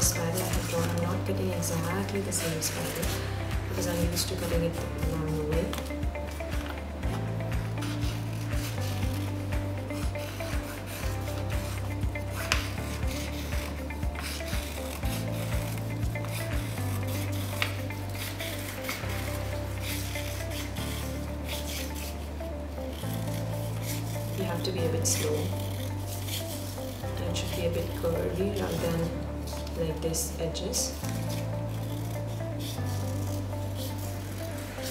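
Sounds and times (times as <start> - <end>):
scissors cutting paper: 0.0 - 29.9, 30.7 - 34.9
background music with low notes: 0.0 - 34.9.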